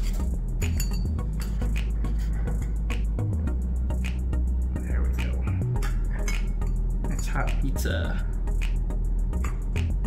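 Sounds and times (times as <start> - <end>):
metal utensils clinking on plate: 0.0 - 1.7.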